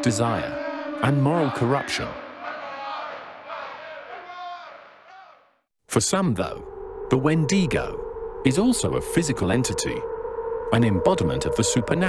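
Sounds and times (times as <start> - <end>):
crowd shouting: 0.0 - 5.6.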